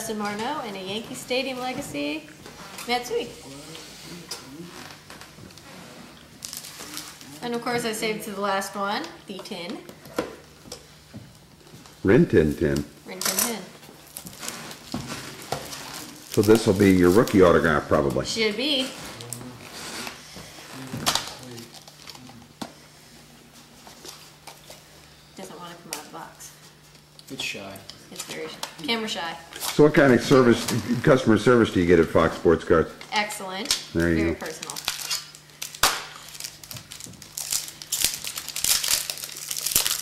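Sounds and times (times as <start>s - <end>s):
foil wrapper crinkling: 6.4s - 7.4s, 14.0s - 18.2s, 34.0s - 40.0s
murmured voices: 19.0s - 20.0s.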